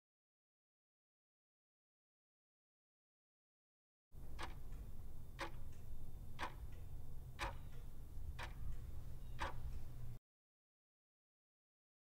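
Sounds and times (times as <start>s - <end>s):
clock ticks: 4.2s - 10.2s
low hum: 4.2s - 10.2s.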